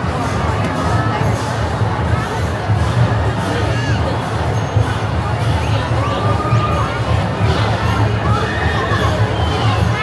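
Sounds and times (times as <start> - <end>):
loud crowd: 0.0 - 10.0.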